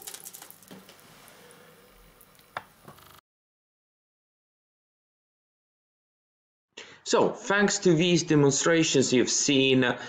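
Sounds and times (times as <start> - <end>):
tap water running into sink: 0.0 - 1.1.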